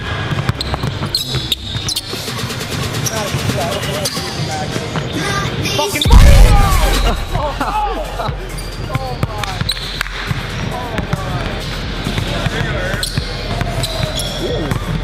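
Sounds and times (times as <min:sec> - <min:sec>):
people laughing and talking: 0:02.2 - 0:09.7.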